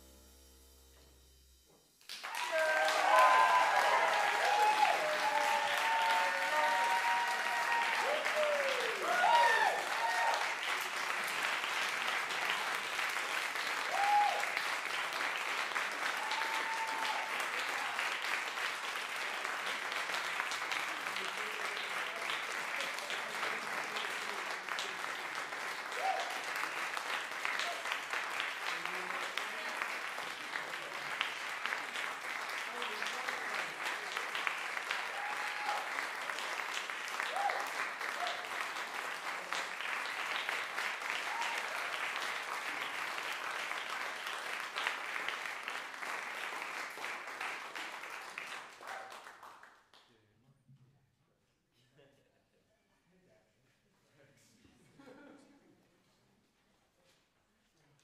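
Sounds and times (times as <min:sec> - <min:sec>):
audience applauding: 0:02.0 - 0:50.0
people cheering and whooping: 0:02.2 - 0:10.7, 0:13.8 - 0:14.6, 0:16.0 - 0:18.2, 0:25.9 - 0:26.5, 0:34.4 - 0:38.6, 0:41.1 - 0:42.2.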